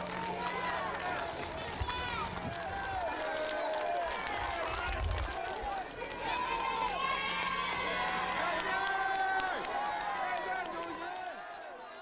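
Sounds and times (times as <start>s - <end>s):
crowd cheering and calling out: 0.0s - 12.0s.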